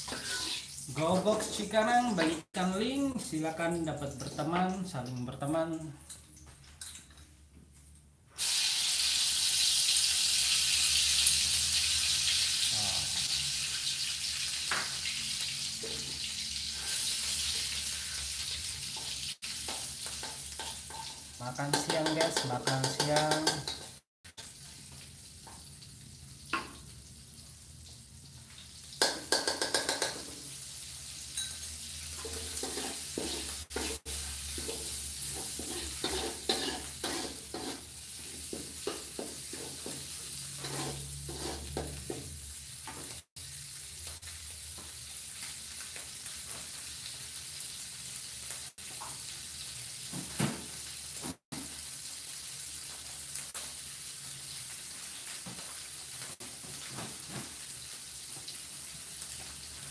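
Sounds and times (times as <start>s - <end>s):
paste sizzling in oil: 0.0s - 2.2s, 8.3s - 59.9s
metal spatula scraping wok: 31.4s - 42.3s.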